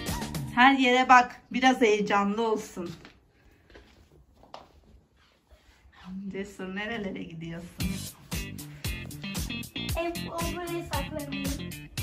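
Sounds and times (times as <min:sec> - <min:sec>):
child's soft footsteps: 0:02.8 - 0:09.4.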